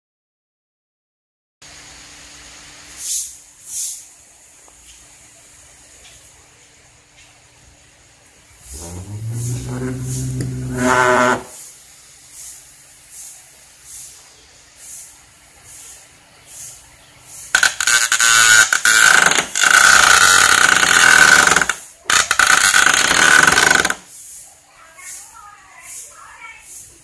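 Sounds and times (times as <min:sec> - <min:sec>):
metal disc grinding on tabletop: 0:08.6 - 0:11.6
small motor whining: 0:08.7 - 0:11.6.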